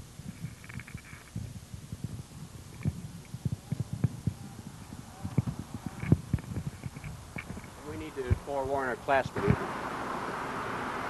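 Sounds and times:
handheld microphone handling thumps: 0.3 - 8.5.

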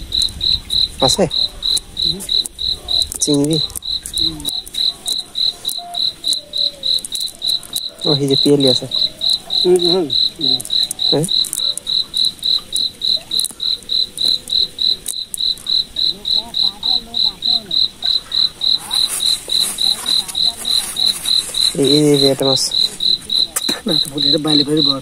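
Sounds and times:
cricket chirping: 0.0 - 25.0.

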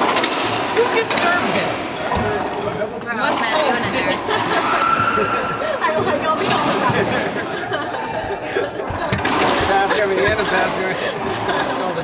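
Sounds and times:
indistinct chatter of voices: 0.0 - 12.0.

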